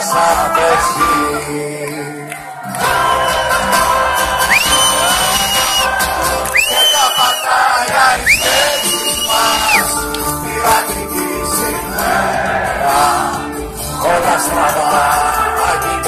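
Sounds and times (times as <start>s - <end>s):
crowd cheering: 0.0s - 16.0s
live band playing: 0.0s - 16.0s
long high whistles: 4.4s - 7.6s, 8.3s - 9.9s.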